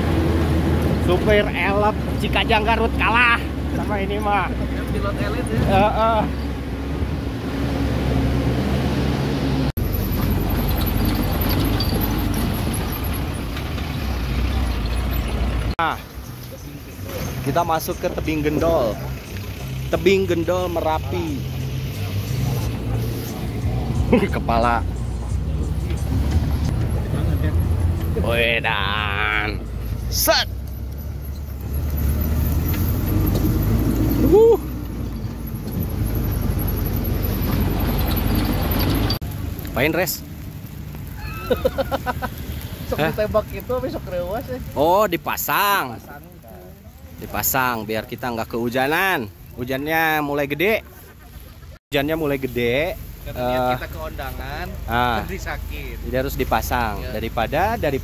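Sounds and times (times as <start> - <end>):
jeep engine running: 0.0 - 50.2
road noise: 0.0 - 58.0
wind: 0.0 - 58.0.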